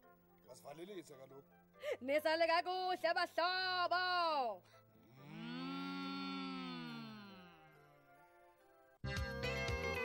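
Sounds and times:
cow mooing: 5.1 - 7.9.

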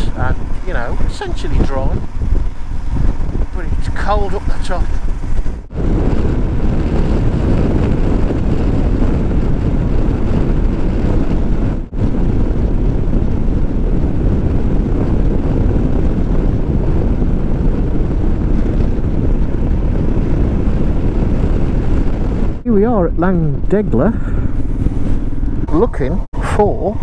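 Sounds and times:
motorcycle engine: 0.0 - 26.9
road noise: 0.0 - 27.0
wind rushing on microphone: 0.0 - 27.0.

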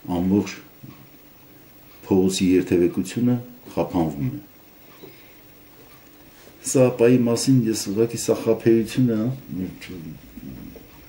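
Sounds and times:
man speaking: 0.0 - 0.7, 2.0 - 4.5, 6.6 - 10.8
low voice murmuring: 9.5 - 10.9.

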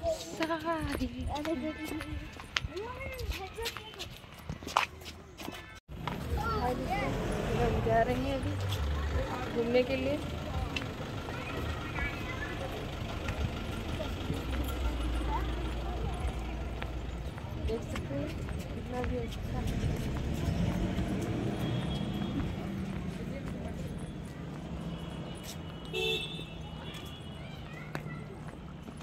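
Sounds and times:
indistinct voices of passers-by: 0.0 - 29.0
vehicle noise: 0.0 - 29.0.

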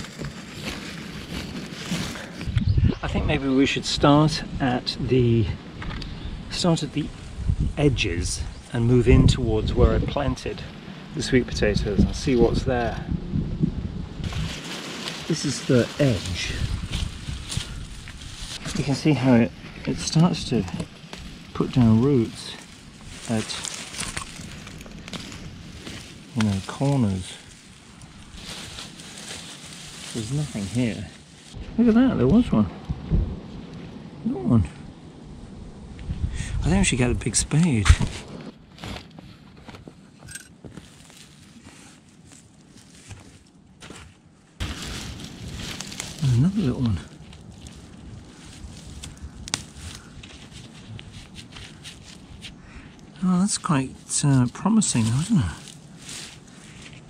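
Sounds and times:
hands digging through soil: 0.0 - 2.6, 14.2 - 31.6, 40.7 - 57.0
small crackles: 0.0 - 2.7, 14.2 - 31.6, 37.9 - 57.0
dry straw and vines rustling: 0.0 - 4.4, 14.1 - 32.6, 37.6 - 57.0.

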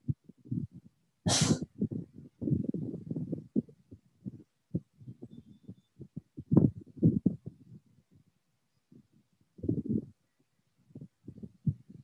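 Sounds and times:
sharp sneeze-like burst: 1.3 - 1.6
muffled thumps: 1.7 - 7.8.

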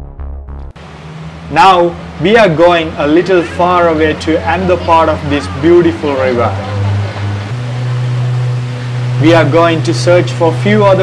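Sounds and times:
boat engine running: 0.8 - 11.0
water noise: 0.8 - 11.0.

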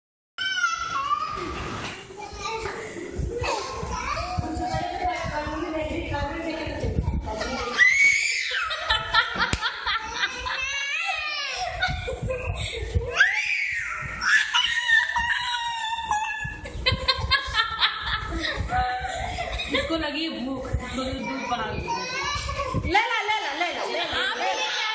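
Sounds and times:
toddler crying: 0.4 - 1.5, 10.0 - 16.6, 21.0 - 22.9
young children's voices: 0.4 - 6.2, 20.7 - 23.0
toddler wailing: 13.1 - 16.6.

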